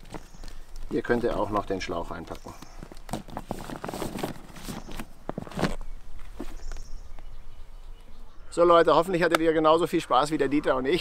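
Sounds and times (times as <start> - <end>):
rustling and knocking of handling: 0.0 - 6.9.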